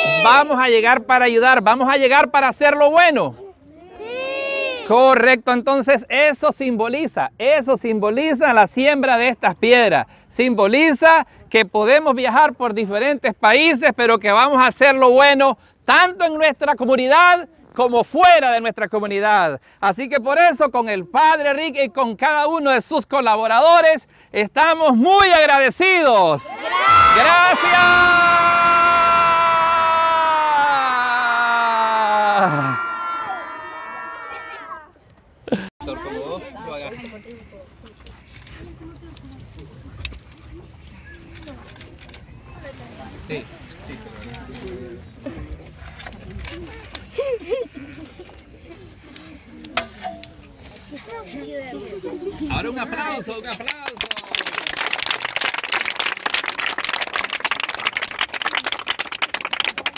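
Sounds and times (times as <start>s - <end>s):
children shouting a cheer: 0.0s - 0.4s, 3.9s - 4.9s, 26.4s - 34.9s
children applauding: 53.7s - 59.9s.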